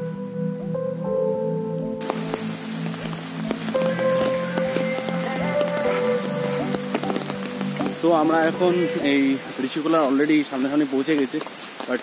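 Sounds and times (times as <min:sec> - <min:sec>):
background music: 0:00.0 - 0:10.5
rain falling: 0:02.0 - 0:12.0.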